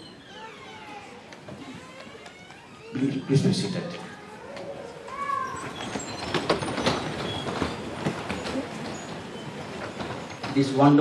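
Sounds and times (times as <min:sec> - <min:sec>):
short squeak: 0:00.0 - 0:02.0, 0:05.4 - 0:10.5
seats and chairs knocking: 0:05.7 - 0:10.7.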